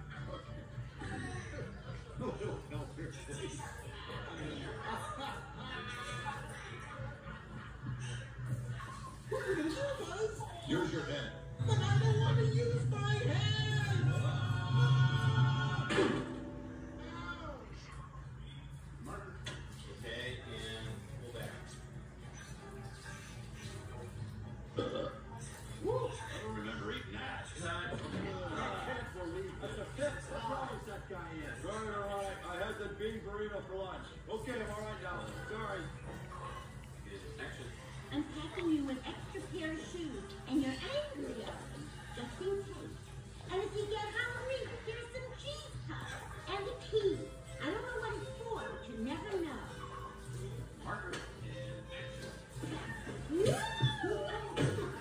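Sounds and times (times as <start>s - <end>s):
soft background music: 0.0s - 55.0s
cartoon voices from television: 22.9s - 30.9s.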